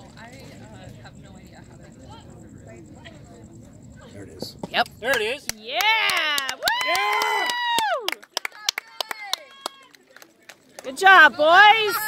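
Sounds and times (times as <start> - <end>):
faint distant voices: 0.0 - 5.7
hand claps: 4.8 - 11.0
high-pitched cheering shout: 5.7 - 8.1.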